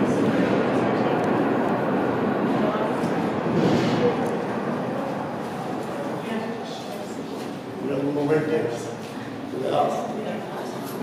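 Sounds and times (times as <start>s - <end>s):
funicular car rumbling on rails: 0.0s - 6.6s.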